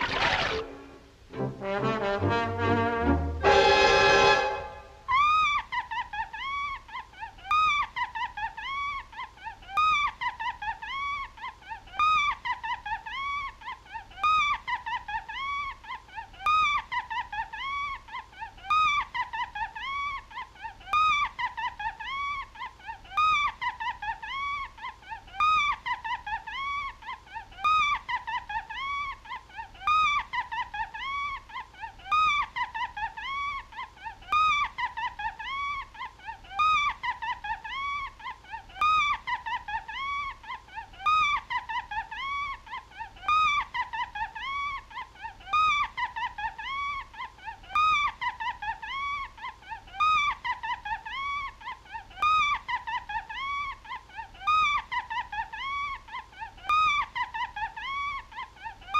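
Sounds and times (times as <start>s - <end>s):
cartoon mouse laughing: 5.1s - 58.9s.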